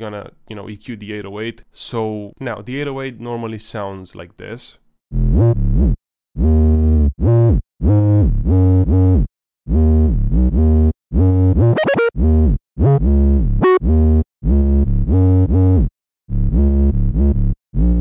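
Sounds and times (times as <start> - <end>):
deep bass notes gliding in pitch: 5.1 - 18.0.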